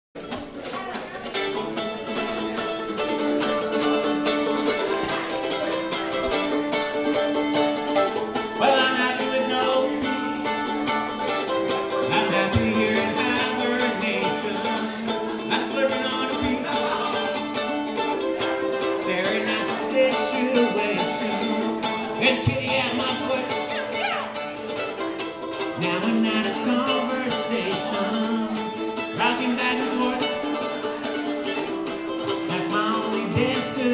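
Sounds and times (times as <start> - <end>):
mandolin strumming: 0.2 - 33.9
plucked string instrument: 0.2 - 33.9
person singing: 8.4 - 24.8, 25.4 - 33.9.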